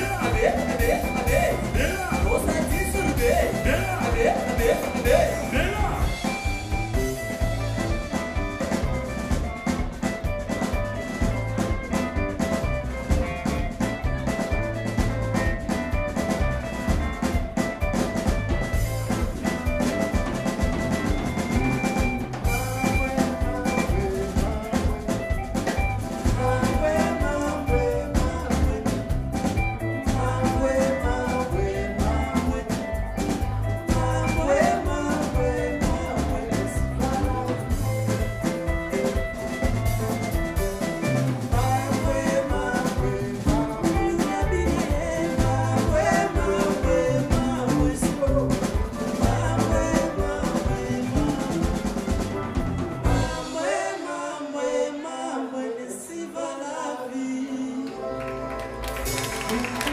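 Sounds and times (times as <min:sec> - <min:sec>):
person singing: 0:00.0 - 0:07.1, 0:21.4 - 0:39.2, 0:39.9 - 0:59.9
bass guitar: 0:00.0 - 0:53.8, 0:57.9 - 0:59.9
drum kit: 0:00.0 - 0:54.0, 0:58.0 - 0:59.9
electric guitars: 0:00.0 - 0:54.0, 0:57.6 - 0:59.9.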